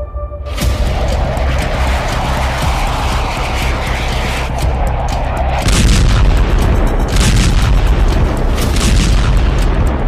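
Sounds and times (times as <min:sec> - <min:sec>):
background music: 0:00.0 - 0:10.0
deep explosion booms: 0:05.5 - 0:08.0.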